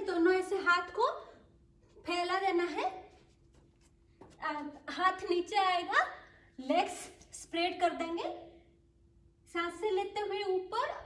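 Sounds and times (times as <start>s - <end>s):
woman speaking: 0.0s - 1.4s, 2.0s - 3.2s, 4.3s - 8.6s, 9.5s - 11.0s.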